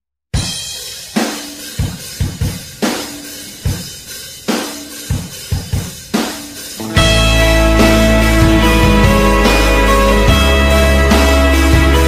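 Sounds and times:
drum kit playing rock beat: 0.3 - 12.0.

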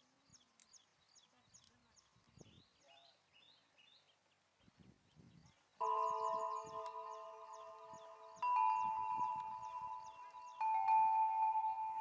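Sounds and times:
small birds chirping: 0.0 - 12.0
chime-like musical chord: 5.8 - 12.0.

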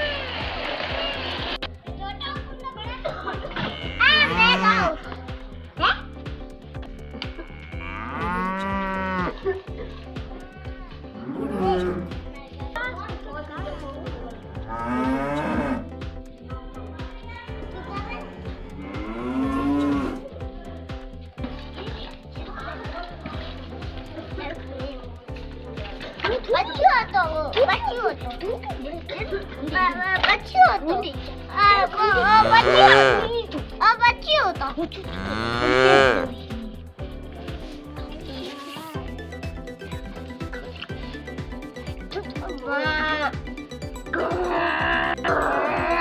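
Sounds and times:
music with regular beat: 0.0 - 46.0
cow mooing: 3.6 - 4.9, 7.0 - 9.4, 14.7 - 15.8, 18.2 - 20.2, 32.4 - 33.3, 35.1 - 36.4, 44.1 - 46.0.

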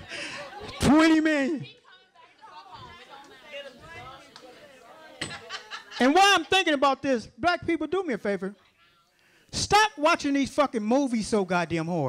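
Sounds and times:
audience chatter: 0.0 - 6.2.

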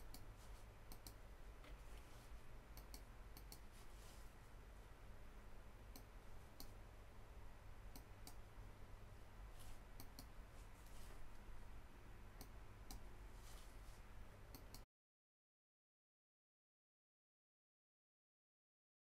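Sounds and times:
faint sharp clicks: 0.9 - 1.8, 2.7 - 3.7, 5.9 - 6.8, 7.9 - 8.4, 10.0 - 10.4, 12.4 - 13.1, 14.5 - 14.9.

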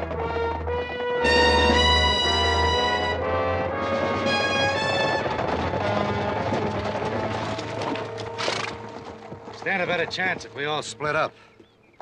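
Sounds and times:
music: 0.0 - 11.6
horses: 0.0 - 12.0.

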